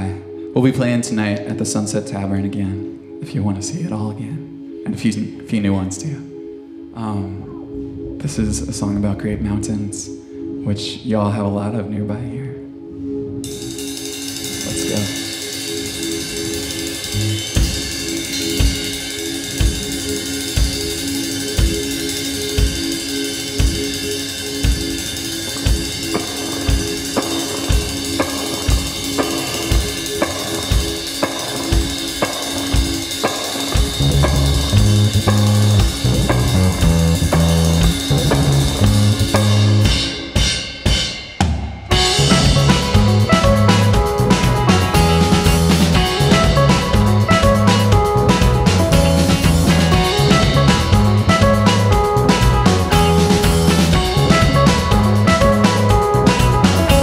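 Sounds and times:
keyboard figure: 0.0 - 57.0
electric guitars: 13.4 - 41.1, 41.9 - 57.0
loud low bass: 16.6 - 19.1, 33.8 - 40.1, 41.9 - 57.0.

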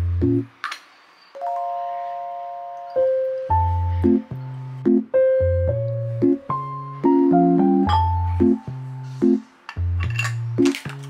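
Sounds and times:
soft keyboard chord: 1.4 - 9.6.

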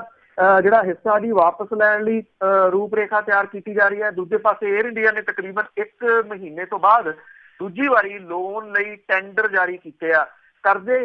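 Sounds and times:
person reading aloud: 0.0 - 11.0.

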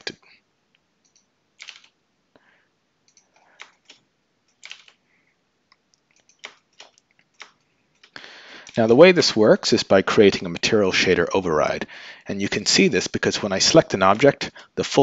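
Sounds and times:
computer keyboard clicks: 1.0 - 2.0, 3.1 - 5.0, 6.1 - 8.8.

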